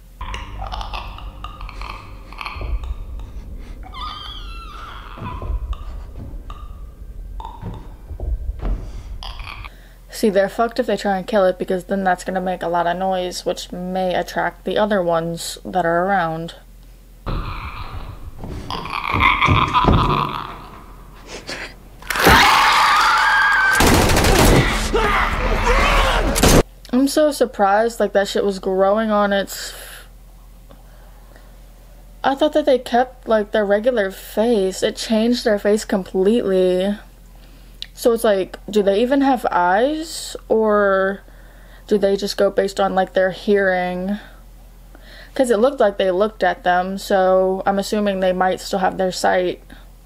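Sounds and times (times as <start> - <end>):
creature clicking and rattling calls: 0.2 - 3.0
horror soundtrack: 0.2 - 9.7
noisy struggle with cries: 0.2 - 9.7, 17.3 - 26.6
low rumble: 0.2 - 9.9
loud shriek: 3.8 - 7.9, 22.1 - 23.9.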